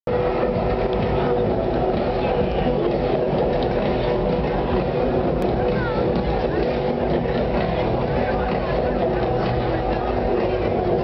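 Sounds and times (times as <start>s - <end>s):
crowd talking: 0.1s - 11.0s
steady low rumble: 0.1s - 11.0s.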